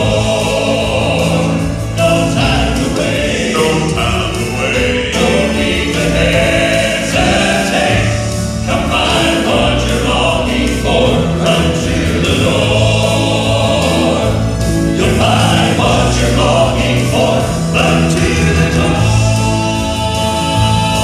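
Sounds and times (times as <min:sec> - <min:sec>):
male quartet singing in harmony: 0:00.0 - 0:21.0
piano accompaniment: 0:00.0 - 0:21.0.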